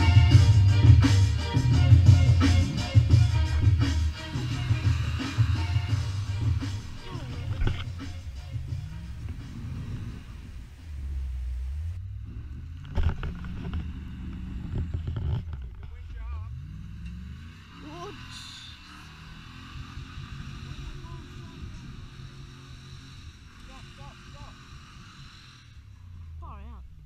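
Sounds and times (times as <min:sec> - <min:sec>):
engine running and revving: 0:00.0 - 0:27.0.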